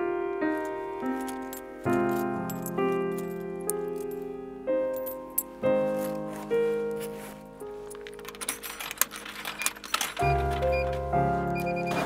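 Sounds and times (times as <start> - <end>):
slow piano music: 0.0 - 12.0
coins jingling: 0.6 - 4.2, 5.0 - 12.0.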